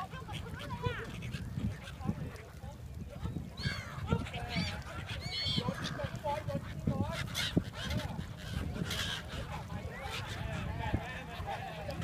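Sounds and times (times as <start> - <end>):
gulls calling: 0.0 - 12.0
people chattering: 0.0 - 12.0.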